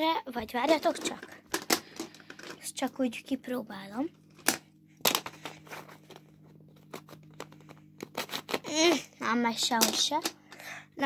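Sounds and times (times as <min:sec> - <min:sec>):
plastic clicks and rustling: 0:00.6 - 0:02.7
plastic clacks: 0:00.7 - 0:02.6.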